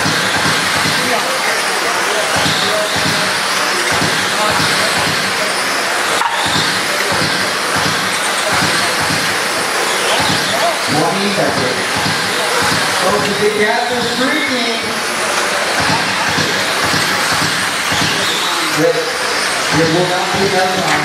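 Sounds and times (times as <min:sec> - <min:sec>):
indistinct voices: 0:00.0 - 0:21.0
rc car motor whine: 0:00.0 - 0:21.0.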